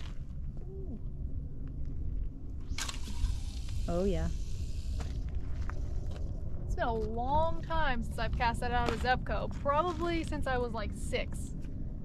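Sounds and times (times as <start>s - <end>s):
low rumble: 0.0s - 12.0s
fishing reel line hissing out: 2.7s - 5.0s.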